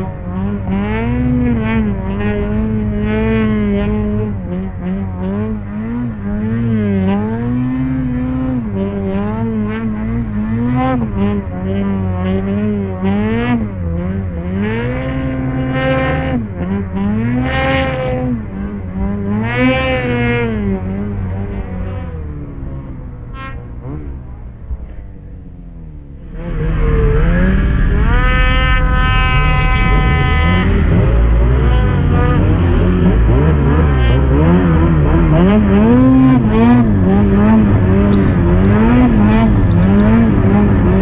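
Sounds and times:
snowmobile engine revving: 0:00.0 - 0:41.0.

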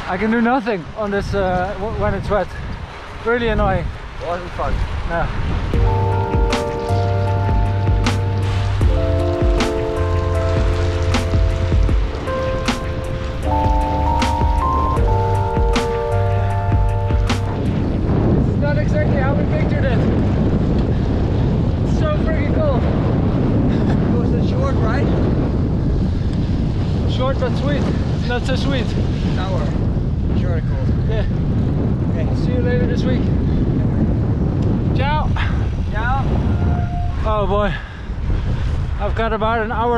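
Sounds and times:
wind on microphone: 0:00.0 - 0:39.9
background music with beat: 0:05.8 - 0:17.9.

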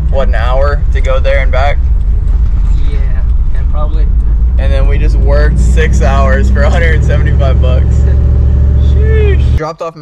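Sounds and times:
man talking: 0:00.0 - 0:01.8, 0:02.7 - 0:08.2, 0:08.8 - 0:10.0
vehicle road and engine rumble: 0:00.0 - 0:09.6.

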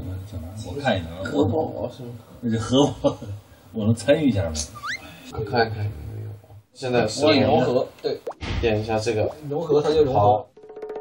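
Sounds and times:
men talking: 0:00.0 - 0:10.5.

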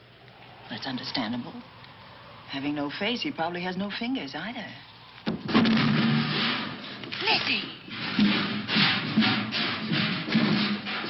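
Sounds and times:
noisy clatter: 0:05.2 - 0:11.0
crash of something falling: 0:05.3 - 0:07.0.

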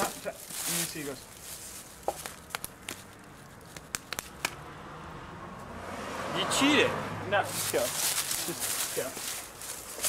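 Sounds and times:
fists striking palms: 0:03.7 - 0:04.6.

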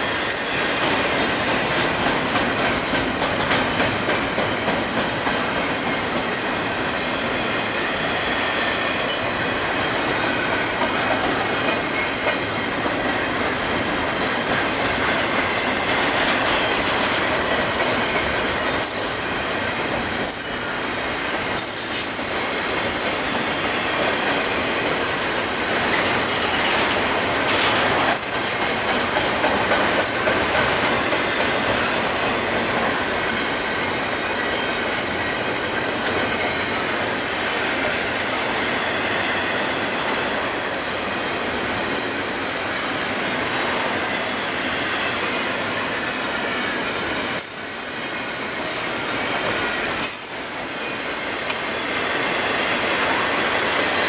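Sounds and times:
train rumbling and rattling on rails: 0:00.0 - 0:54.0.

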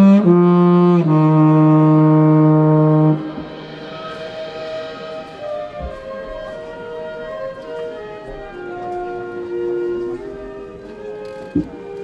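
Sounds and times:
marching band brass chord: 0:00.0 - 0:10.5
band holding soft notes: 0:00.3 - 0:12.0.

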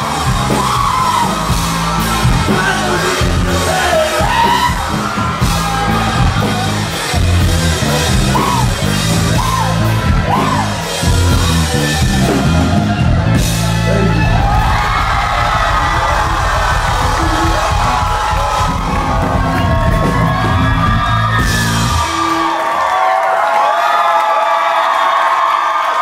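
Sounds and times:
loud live rock band: 0:00.0 - 0:23.8
crowd cheering and screaming: 0:00.0 - 0:26.0
crowd yelling and singing along: 0:00.0 - 0:26.0.

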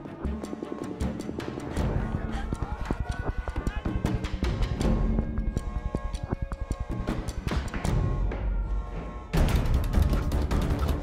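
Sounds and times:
tense film score music: 0:00.0 - 0:11.0.

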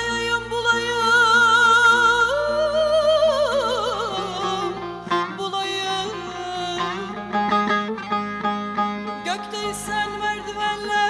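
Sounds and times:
plucked string ensemble: 0:00.0 - 0:11.0.

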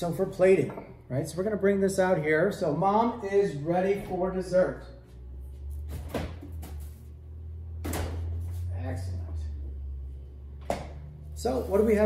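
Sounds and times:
refrigerator hum: 0:00.0 - 0:12.0.

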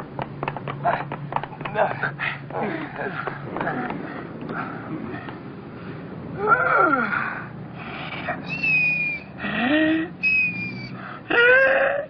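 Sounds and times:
men whimpering and wailing: 0:06.4 - 0:07.3, 0:08.3 - 0:12.0
thin high whining tones: 0:08.4 - 0:09.4, 0:10.2 - 0:11.0.

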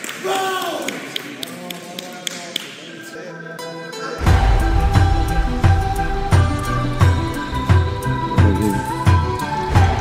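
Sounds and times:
voices echoing in hall: 0:00.0 - 0:04.3.

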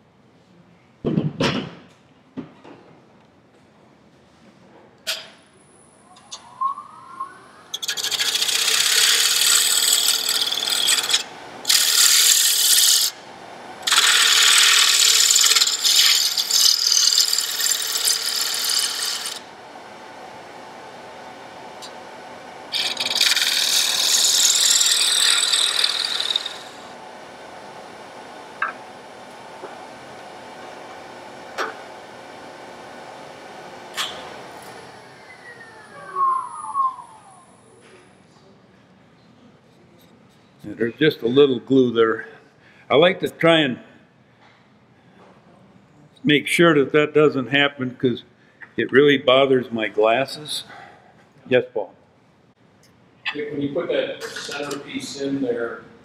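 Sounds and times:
lathe humming: 0:06.0 - 0:37.7
turning tool scraping wood: 0:07.7 - 0:13.2, 0:13.8 - 0:19.4, 0:22.7 - 0:26.9.

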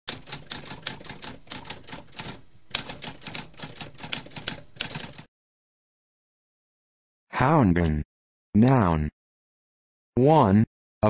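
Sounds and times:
typewriter keys typing: 0:00.1 - 0:05.3.

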